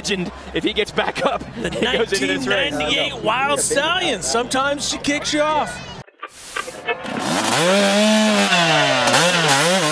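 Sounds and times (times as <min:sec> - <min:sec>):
two-stroke engine revving: 0:07.0 - 0:09.9.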